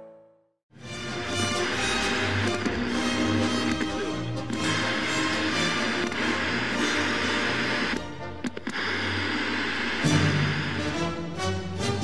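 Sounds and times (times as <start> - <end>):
dramatic orchestral theme music: 0.8 - 8.4, 10.0 - 12.0
sharp clicks: 1.7 - 10.0.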